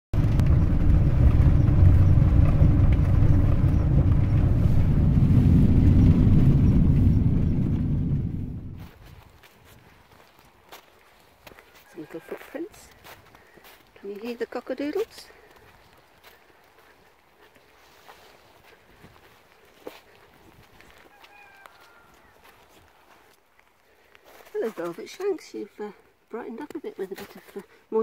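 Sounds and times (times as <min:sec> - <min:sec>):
loud low rumbling: 0:00.2 - 0:09.0.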